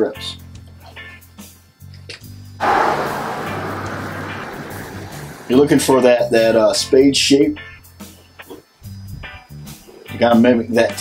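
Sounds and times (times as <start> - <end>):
background music low notes: 0.0 - 11.0
loud steady rushing noise: 2.6 - 6.6.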